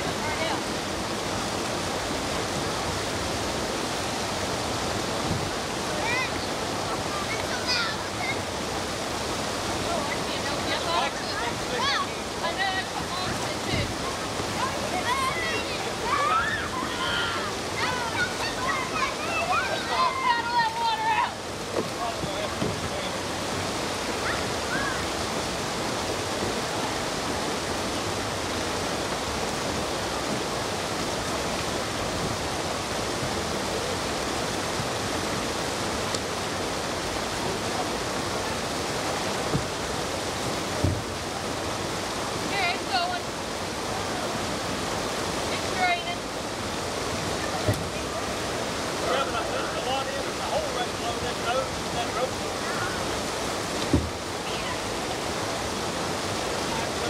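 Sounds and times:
river rushing over rocks: 0.0s - 57.0s
dull knocks: 21.7s - 23.0s, 40.8s - 41.1s, 53.8s - 54.2s.

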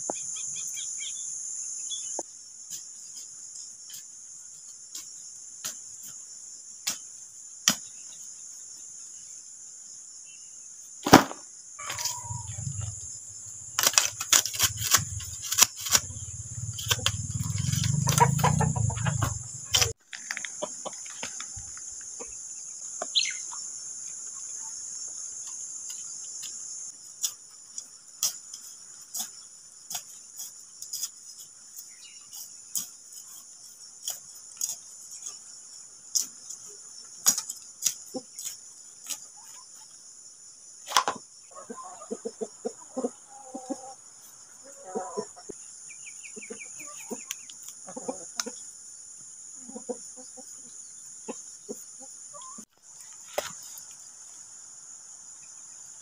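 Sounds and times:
crickets chirping: 0.0s - 56.0s
hand blade cutting weeds: 11.1s - 20.0s
chickens clucking: 11.8s - 13.1s, 16.0s - 21.5s, 41.5s - 44.0s, 44.7s - 45.6s, 46.2s - 48.7s, 49.6s - 52.6s
wind rumble on microphone: 12.3s - 13.1s.

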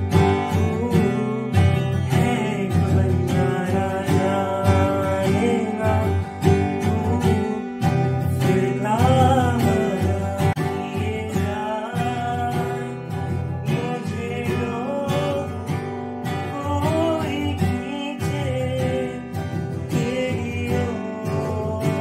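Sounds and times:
acoustic guitar strummed: 0.0s - 22.0s
young man singing: 0.0s - 22.0s.

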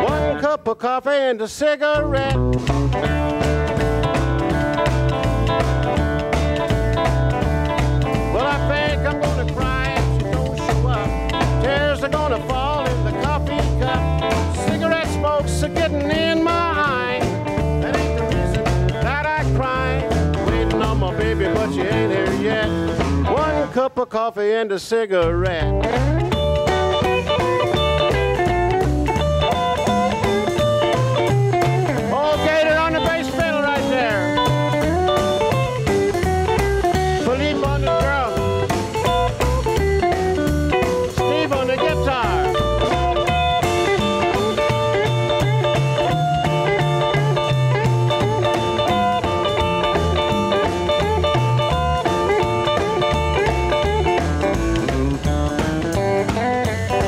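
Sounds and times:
electric guitar lead with bent notes: 0.0s - 0.4s, 1.9s - 23.8s, 25.2s - 57.0s
drums: 0.0s - 0.6s, 1.8s - 24.2s, 24.8s - 57.0s
upright bass: 0.0s - 0.9s, 1.8s - 24.2s, 24.8s - 57.0s
strummed acoustic guitar: 2.0s - 23.8s, 25.5s - 57.0s.

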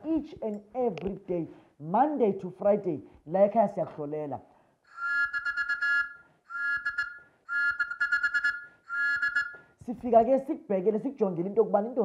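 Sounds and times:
whistle blasts: 4.9s - 9.8s.

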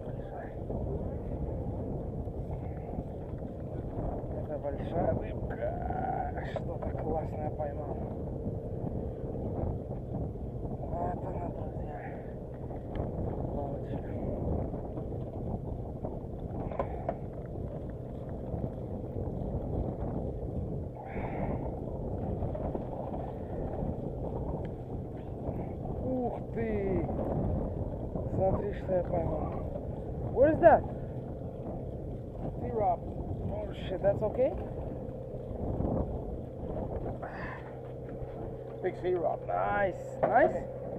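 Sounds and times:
boat engine rumble and hum: 0.0s - 40.9s
wind on microphone: 0.0s - 40.9s.

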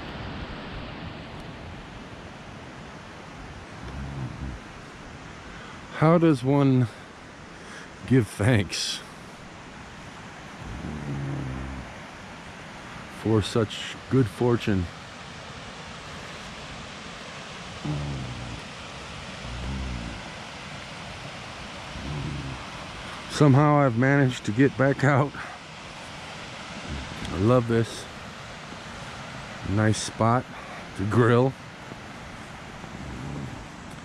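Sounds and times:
steady rushing hiss: 0.0s - 34.0s
wind on microphone: 3.7s - 4.8s, 10.6s - 11.9s, 19.4s - 20.4s, 22.0s - 22.8s, 26.8s - 27.5s, 32.8s - 34.0s
man humming low: 3.8s - 4.8s, 10.6s - 11.9s, 17.8s - 18.8s, 19.4s - 20.4s, 22.0s - 22.7s, 26.8s - 28.0s, 32.9s - 33.8s.

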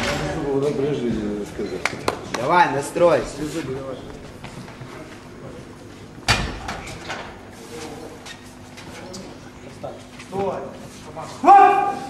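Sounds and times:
low hall noise: 0.0s - 12.0s.

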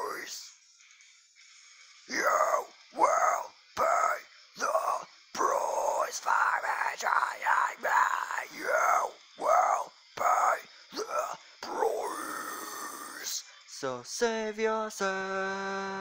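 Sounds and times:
wordless vocal bursts sliding down: 2.1s - 13.5s.

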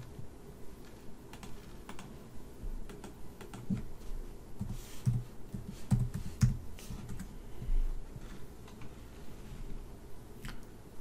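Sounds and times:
computer keyboard keystrokes: 0.8s - 2.1s, 2.9s - 3.8s.

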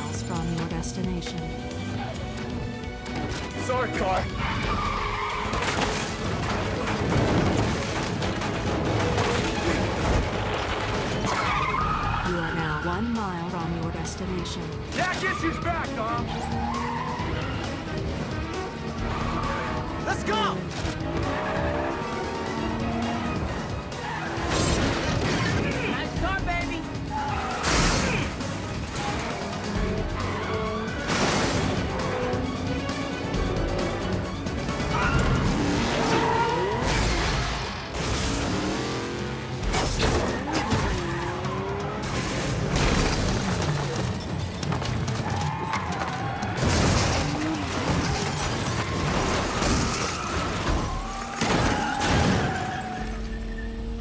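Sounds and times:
action music score: 0.0s - 54.0s
car engines revving: 0.0s - 54.0s
tyres skidding and squealing: 0.0s - 54.0s
crashes and impacts: 5.4s - 11.4s, 30.9s - 32.1s, 42.0s - 52.6s.

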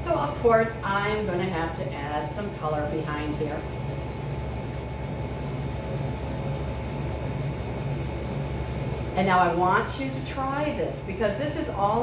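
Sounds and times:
pastel scratching on paper: 1.5s - 12.0s.

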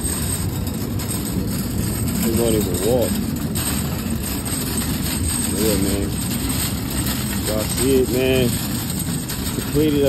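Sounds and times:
shopping cart rolling over pavement: 0.0s - 10.0s.

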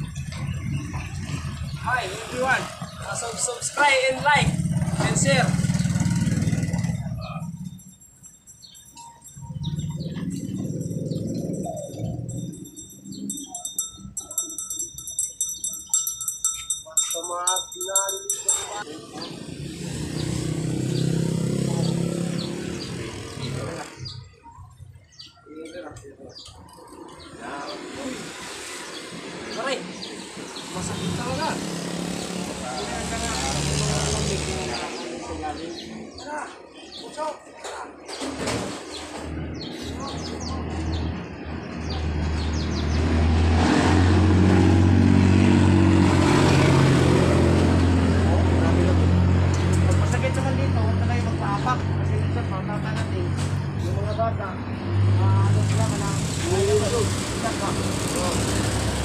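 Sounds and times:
street traffic engine rumble: 0.0s - 59.0s
people talking: 1.8s - 7.6s, 13.2s - 19.5s, 25.4s - 26.6s, 27.3s - 28.3s, 30.7s - 31.7s, 32.4s - 38.6s, 39.7s - 41.1s, 47.9s - 58.6s
rhythmic high jingling: 5.4s - 19.2s.

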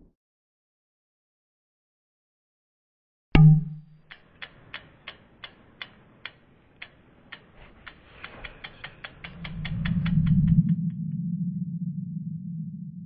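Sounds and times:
sharp ticks: 3.4s - 11.2s
low rumble: 9.2s - 13.0s.

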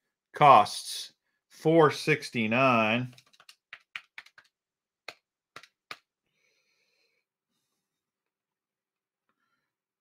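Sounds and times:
keyboard typing: 3.0s - 6.1s.

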